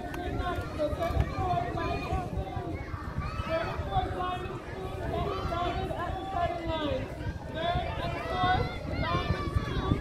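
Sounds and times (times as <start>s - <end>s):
chatter of distant voices: 0.0s - 10.0s
wind rumbling on microphone: 0.0s - 10.0s.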